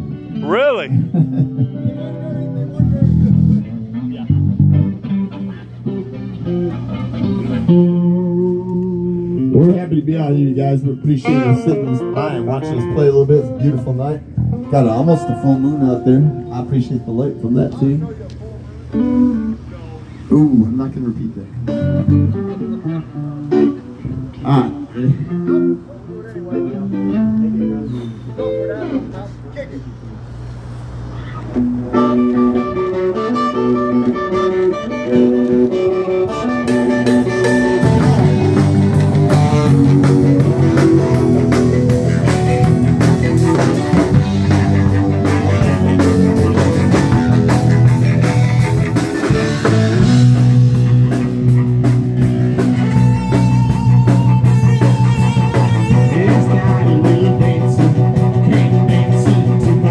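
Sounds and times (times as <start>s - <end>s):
keyboard playing: 0.0s - 3.8s, 31.5s - 59.9s
bass guitar notes: 0.0s - 30.2s, 31.0s - 59.9s.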